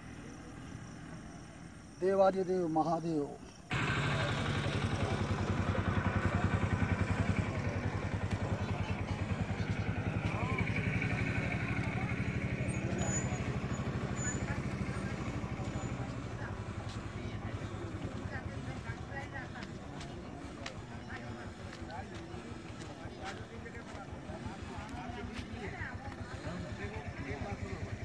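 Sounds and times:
engine pulsing low thrum: 3.7s - 28.0s.

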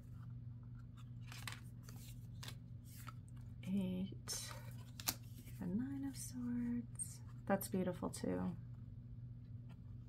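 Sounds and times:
low steady hum: 0.0s - 10.0s
cards sliding: 0.8s - 3.2s, 4.5s - 5.6s.

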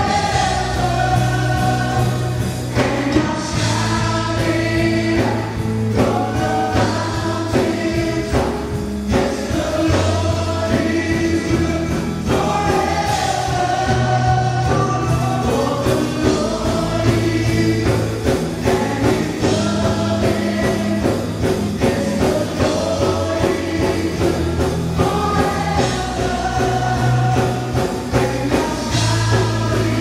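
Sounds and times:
voices singing together: 0.0s - 30.0s
worship band playing: 0.0s - 30.0s.

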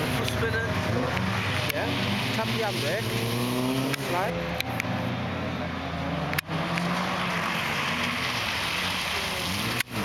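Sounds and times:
road and wind noise: 0.0s - 10.0s.

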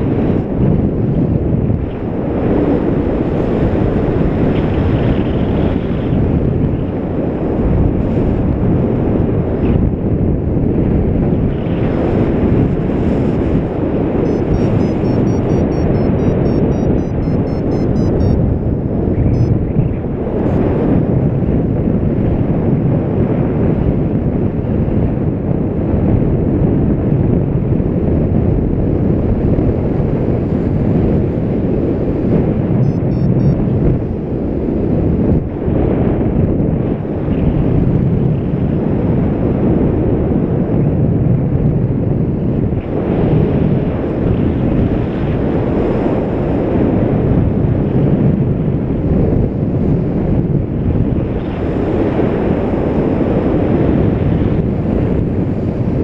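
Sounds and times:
wind buffeting microphone: 0.0s - 15.7s, 18.2s - 56.0s.

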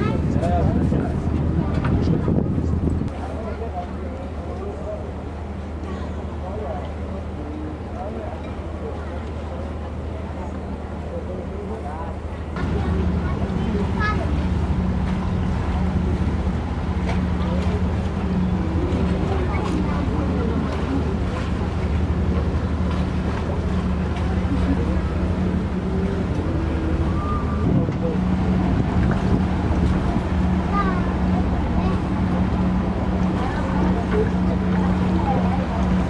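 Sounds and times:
boat engine droning: 0.0s - 36.0s
faint voices talking: 0.0s - 36.0s.

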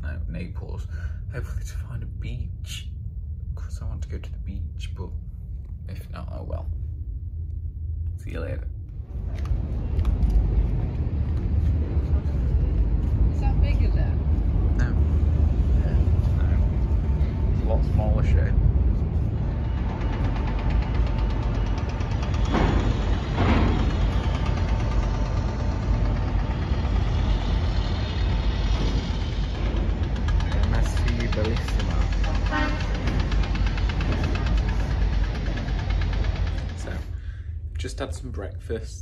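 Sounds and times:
outdoor noise: 0.0s - 39.0s.

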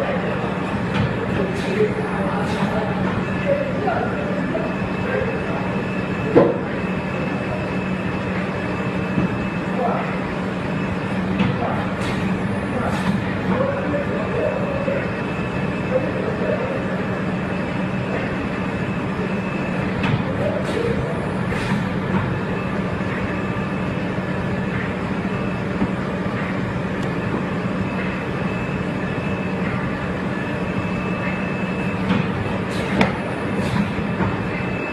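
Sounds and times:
machine drone with hum: 0.0s - 34.9s.

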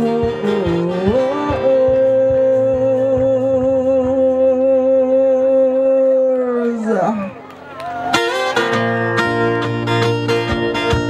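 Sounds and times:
man singing a long note: 0.0s - 7.2s.

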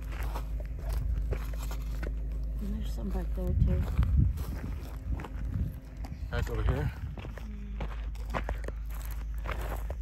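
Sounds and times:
footsteps crunching on gravel: 0.0s - 10.0s.

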